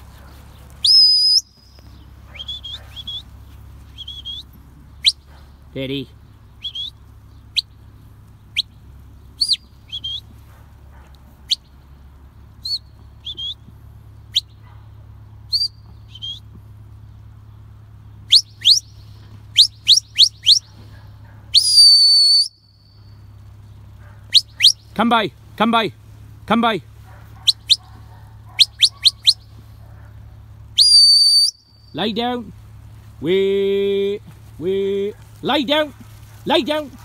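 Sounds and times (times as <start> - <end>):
sharp whistle blasts: 0.8 - 1.8, 2.4 - 3.2, 4.0 - 5.2, 9.4 - 10.3, 12.6 - 13.6, 15.5 - 16.5, 18.3 - 20.7, 21.5 - 23.2, 24.3 - 24.8, 28.6 - 29.4, 30.8 - 32.0.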